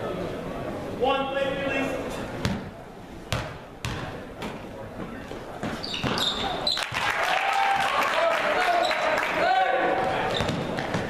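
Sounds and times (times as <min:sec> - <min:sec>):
crowd voices: 0:00.0 - 0:11.0
sneakers squeaking: 0:02.1 - 0:07.0, 0:10.0 - 0:11.0
basketball bouncing: 0:02.4 - 0:02.7, 0:03.3 - 0:04.2, 0:05.6 - 0:06.4, 0:10.0 - 0:11.0.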